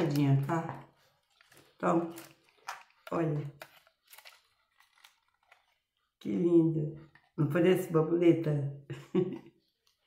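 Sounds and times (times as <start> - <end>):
plastic pieces and skewers clicking: 1.2 - 5.9.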